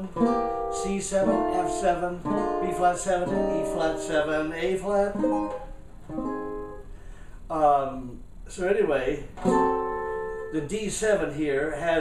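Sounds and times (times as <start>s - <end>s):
banjo chords strummed: 0.0s - 6.8s.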